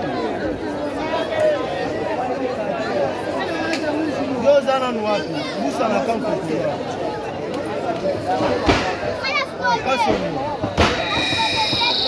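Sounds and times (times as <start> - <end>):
crowd chatter: 0.0 - 12.0
voices talking over one another: 8.3 - 12.0.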